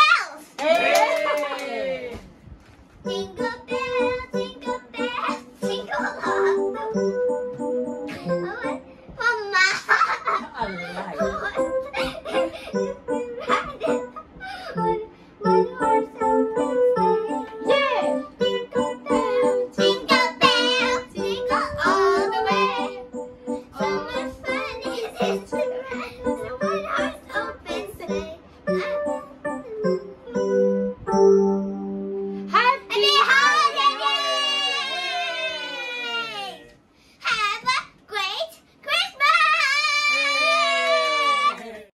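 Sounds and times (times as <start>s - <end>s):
piano accompaniment: 3.0s - 9.4s, 10.7s - 33.7s
girl singing: 3.0s - 9.6s, 10.8s - 30.8s.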